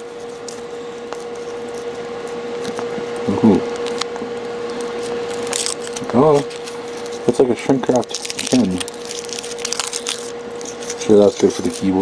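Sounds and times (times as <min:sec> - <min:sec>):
foil wrapper crinkling: 0:00.0 - 0:12.0
steady hum: 0:00.0 - 0:12.0.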